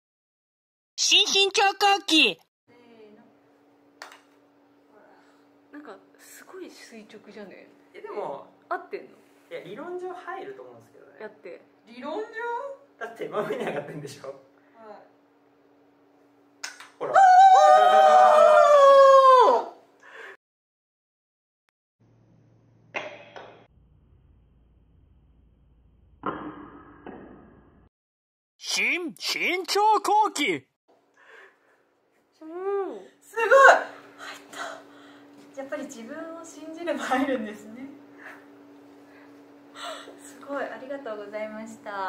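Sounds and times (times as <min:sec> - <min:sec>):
woman breathing: 0:20.0 - 0:20.4, 0:31.1 - 0:31.9, 0:34.1 - 0:35.3, 0:39.0 - 0:40.3.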